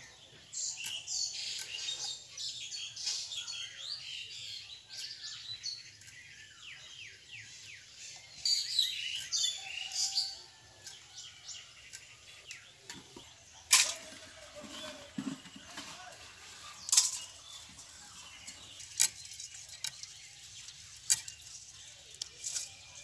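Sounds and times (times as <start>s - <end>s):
birds chirping: 0.0s - 23.0s.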